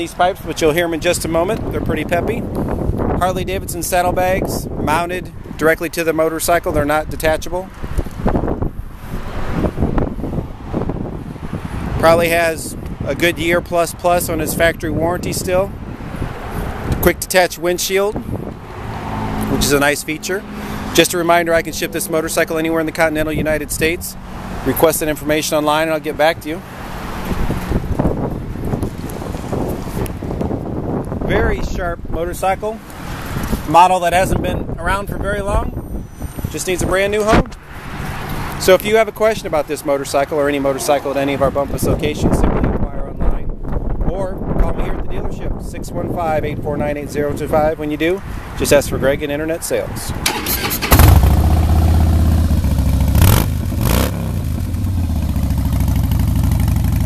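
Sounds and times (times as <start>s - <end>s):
wind buffeting microphone: 0.0s - 17.2s, 17.9s - 20.0s, 21.3s - 39.6s, 41.0s - 57.0s
motorcycle engine revving and idling: 50.3s - 57.0s.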